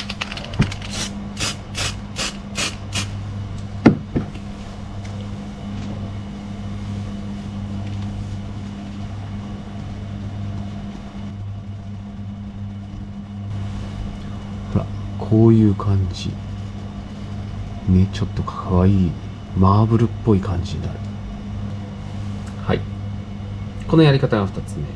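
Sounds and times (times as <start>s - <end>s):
steady low hum: 0.0s - 24.9s.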